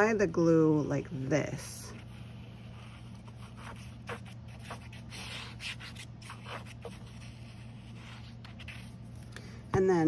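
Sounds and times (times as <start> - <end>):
glue bottle tip scratching paper: 1.9 - 9.0.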